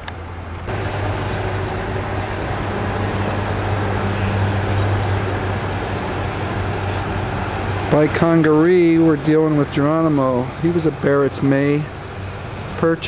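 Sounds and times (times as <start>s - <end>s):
low engine hum: 0.0s - 13.0s
loud rushing noise: 0.6s - 12.9s.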